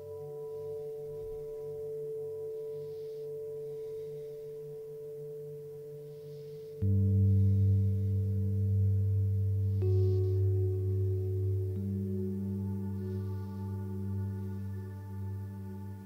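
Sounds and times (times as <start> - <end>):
singing bowls ringing: 0.0 - 8.6.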